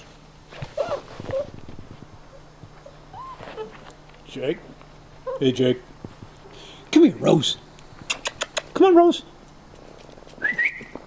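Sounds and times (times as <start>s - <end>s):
rustling on grass: 0.0s - 4.3s
puppies whining: 0.5s - 4.1s, 5.2s - 5.6s.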